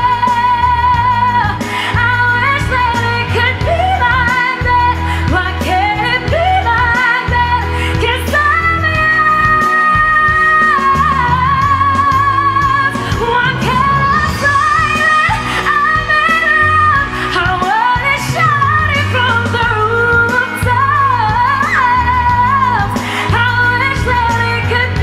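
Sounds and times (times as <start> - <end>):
band accompaniment with bass: 0.0 - 25.0
woman singing a pop ballad: 0.0 - 25.0.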